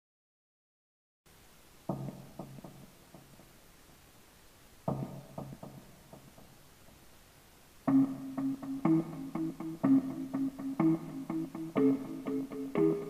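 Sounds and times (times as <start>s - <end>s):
guitar chord with echoing repeats: 7.9s - 13.0s
guitar music: 7.9s - 13.0s.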